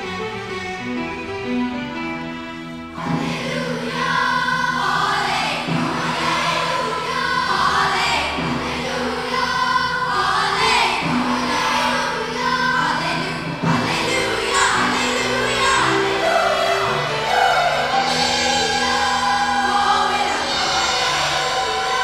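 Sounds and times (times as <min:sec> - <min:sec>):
orchestra playing: 0:00.0 - 0:22.0
choir singing: 0:03.0 - 0:22.0.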